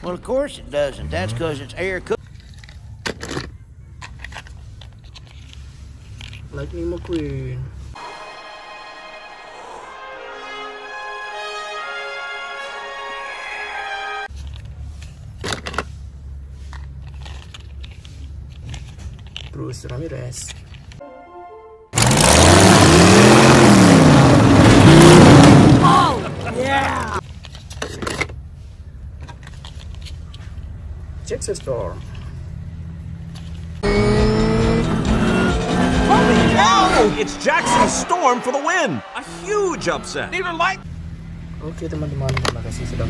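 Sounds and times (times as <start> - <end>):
race car engines: 0.1 - 4.3, 22.0 - 27.2, 30.2 - 43.0
orchestral film music: 8.0 - 14.3, 21.0 - 22.0, 34.3 - 40.8.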